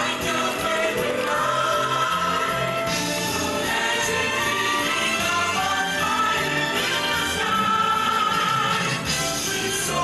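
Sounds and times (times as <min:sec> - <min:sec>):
choir singing held notes: 0:00.0 - 0:10.0
stage-show music: 0:00.0 - 0:10.0.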